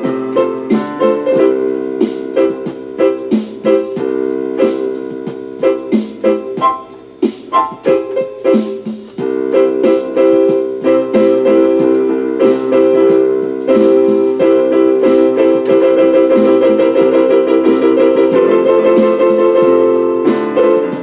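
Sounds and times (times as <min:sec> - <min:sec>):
electronic keyboard chords: 0:00.0 - 0:21.0.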